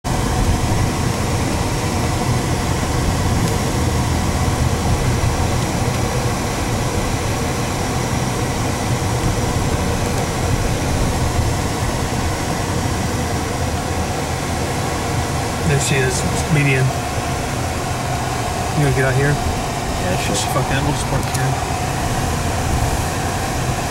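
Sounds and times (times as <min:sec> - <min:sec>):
car interior engine and road rumble: 0:00.0 - 0:23.9.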